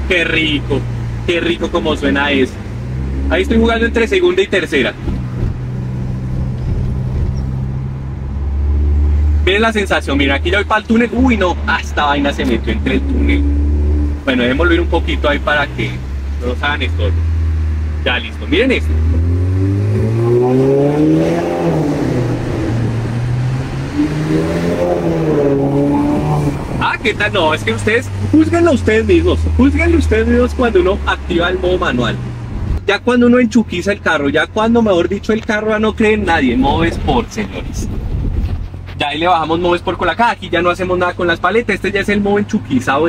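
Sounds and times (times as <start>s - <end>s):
car engine and exhaust drone: 0.0s - 43.0s
car engine revving from inside cabin: 12.3s - 15.2s, 18.8s - 26.8s.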